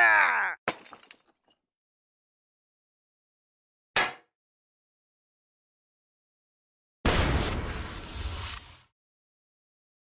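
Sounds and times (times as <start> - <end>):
sharp crash: 7.1 - 8.9.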